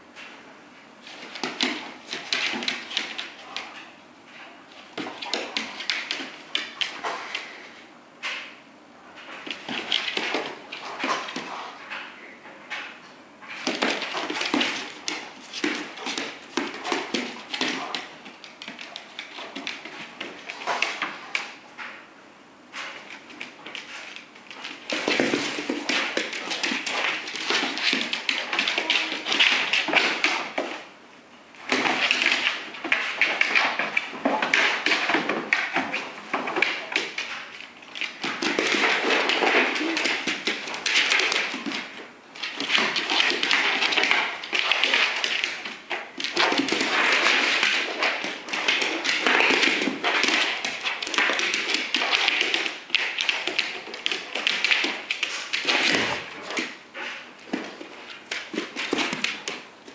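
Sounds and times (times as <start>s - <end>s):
dog claws scrabbling on hardwood floor: 1.0s - 7.6s, 9.2s - 12.9s, 13.5s - 22.0s, 22.7s - 30.9s, 31.6s - 59.9s.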